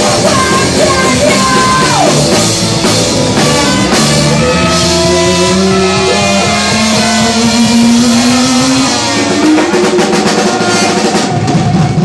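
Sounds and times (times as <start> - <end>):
rock band distorted note: 0.0 - 12.0.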